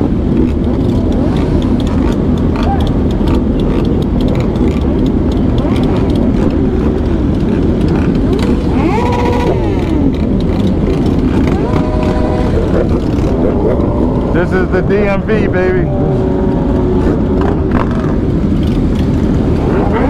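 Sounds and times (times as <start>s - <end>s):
motorcycle engines revving: 0.0s - 20.0s.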